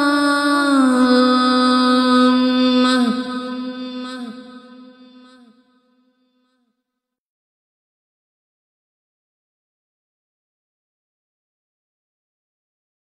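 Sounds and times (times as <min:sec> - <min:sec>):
person chanting: 0:00.0 - 0:05.8.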